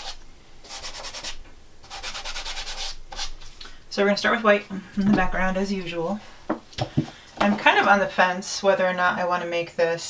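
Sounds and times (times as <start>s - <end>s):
gloved hand rubbing canvas: 0.0s - 3.6s.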